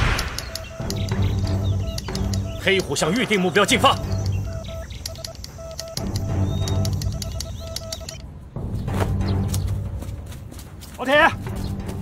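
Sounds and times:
morse code beeps: 0:00.0 - 0:08.2
background music: 0:00.0 - 0:12.0.

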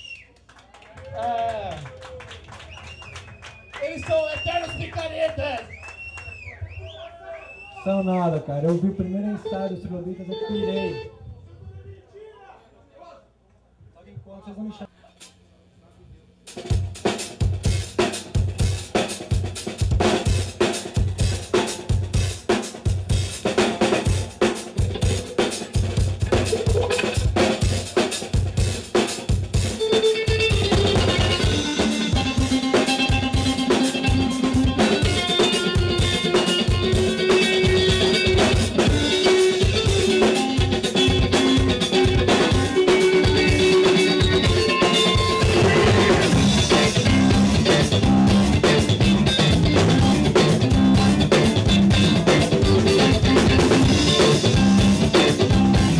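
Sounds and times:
rock band playing: 0:08.6 - 0:11.1, 0:16.5 - 0:55.9
rock drum beat: 0:16.5 - 0:55.9.

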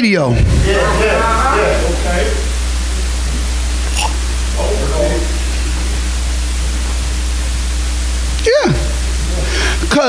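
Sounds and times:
sound system hiss and hum: 0:00.0 - 0:10.0
man speaking: 0:04.0 - 0:05.5.

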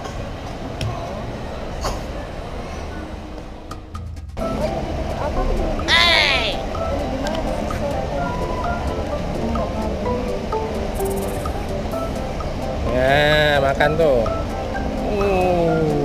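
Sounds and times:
background music: 0:03.1 - 0:16.0
voices: 0:04.4 - 0:16.0
child squealing: 0:05.9 - 0:06.6.

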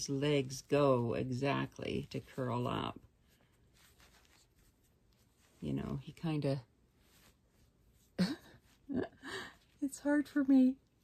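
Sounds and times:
faint rustling of doll handling: 0:00.0 - 0:11.0.

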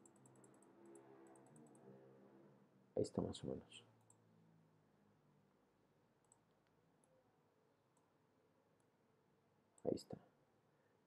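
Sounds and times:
computer mouse clicks: 0:00.0 - 0:01.9, 0:06.2 - 0:07.1.

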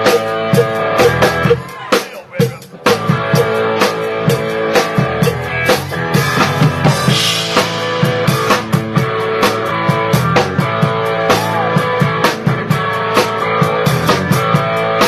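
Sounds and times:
drum hits: 0:00.0 - 0:12.8
live band playing: 0:00.0 - 0:15.0.

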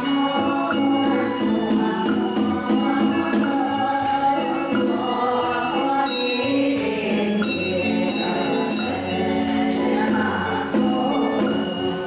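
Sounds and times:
ritual bell struck: 0:00.0 - 0:12.0
voices chanting through pa: 0:00.0 - 0:12.0.

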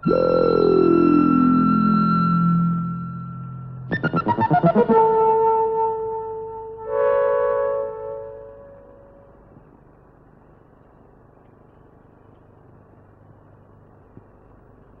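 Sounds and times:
synthesizer chord: 0:00.0 - 0:09.4
faint steady hiss: 0:00.0 - 0:15.0.

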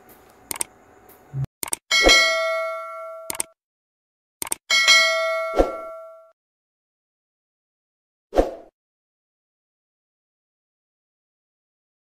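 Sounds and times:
mouse clicks: 0:00.5 - 0:00.7, 0:03.3 - 0:03.5
bright bell ding: 0:01.9 - 0:03.5, 0:04.7 - 0:06.3.

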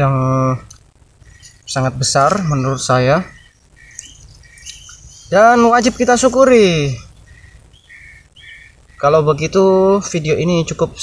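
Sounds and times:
bird chirping faintly: 0:01.2 - 0:11.0.

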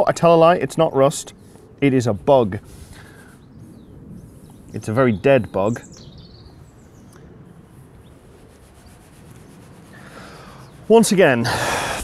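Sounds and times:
metal-tipped tool rubbing on wood: 0:08.2 - 0:11.3.

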